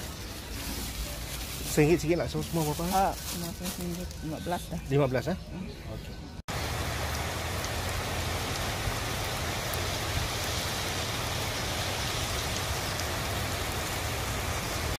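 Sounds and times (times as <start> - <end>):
heavy rain on a street: 6.5 - 15.0.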